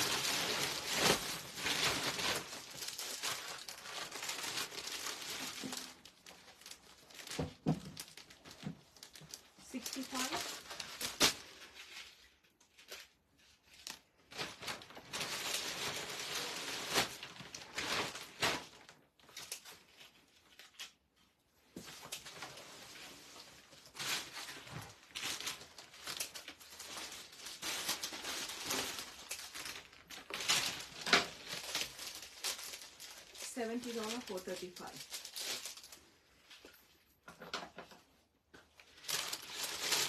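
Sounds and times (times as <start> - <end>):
plastic wrapping crinkling: 0.0 - 40.0.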